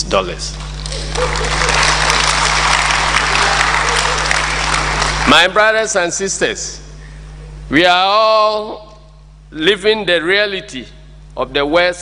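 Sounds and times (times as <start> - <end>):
audience applauding: 0.6 - 5.6.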